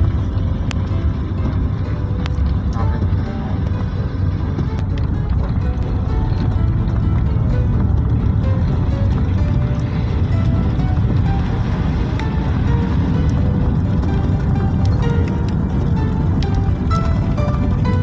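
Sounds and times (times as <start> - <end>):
faint music: 0.0 - 18.0
vehicle road and engine rumble: 0.0 - 18.0.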